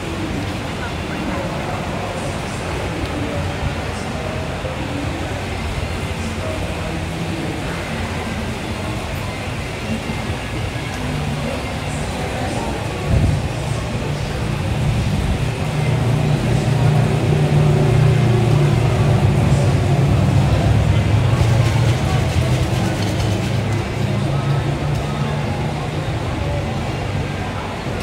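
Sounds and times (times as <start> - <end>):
engine rumbling: 0.0 - 28.0
market crowd chatter: 0.0 - 28.0.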